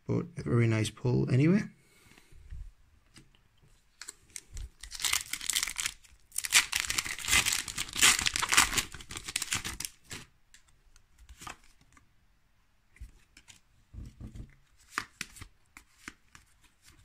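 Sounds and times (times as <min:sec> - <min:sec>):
foil wrapper tearing and crinkling: 0:04.0 - 0:10.3.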